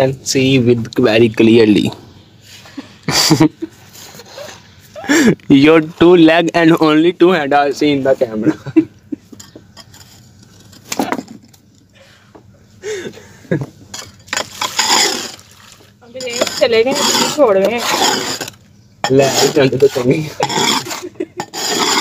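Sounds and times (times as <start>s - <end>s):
trowel scraping dry soil: 9.8s - 10.9s, 14.0s - 15.6s, 16.2s - 22.0s
water poured onto soil: 14.3s - 16.0s
person speaking: 16.0s - 18.2s.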